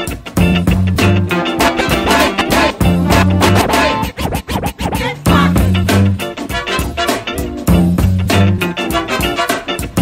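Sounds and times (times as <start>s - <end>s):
dj mix music: 0.6s - 10.0s
turntable scratching: 1.5s - 7.2s.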